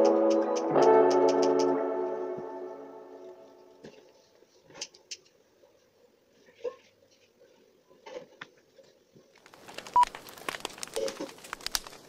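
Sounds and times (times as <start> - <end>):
brief high tone: 0.0 - 3.8.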